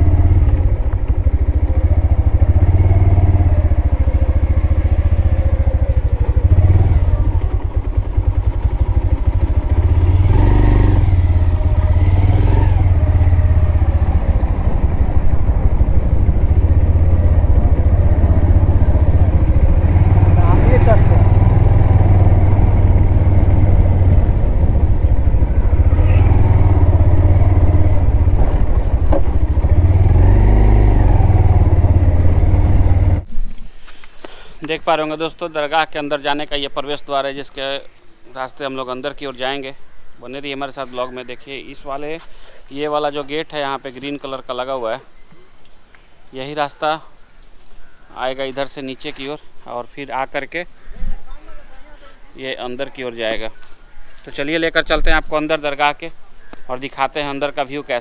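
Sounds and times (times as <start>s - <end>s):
motorcycle engine rumbling: 0.0s - 37.6s, 38.5s - 58.0s.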